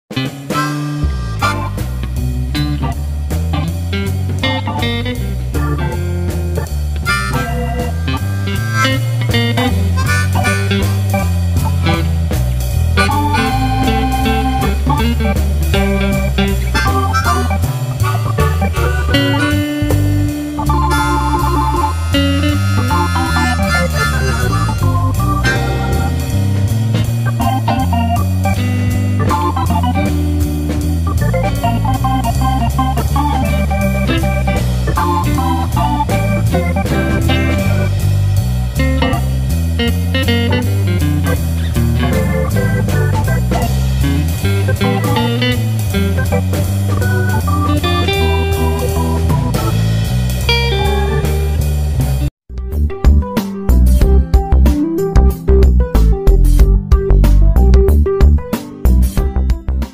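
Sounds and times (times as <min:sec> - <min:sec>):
instrumental music with organ and guitar: 0:00.1 - 0:52.3, 0:53.0 - 0:59.9.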